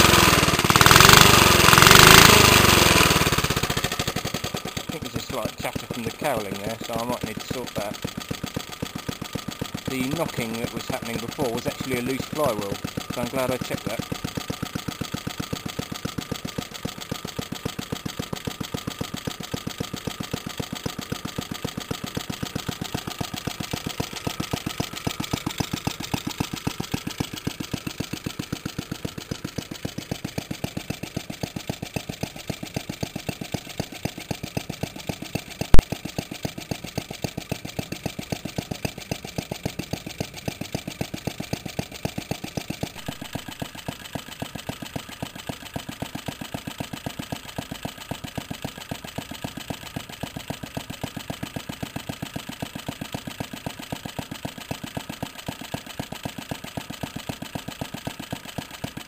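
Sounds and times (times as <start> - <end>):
small engine ticking over: 0.0 - 59.0.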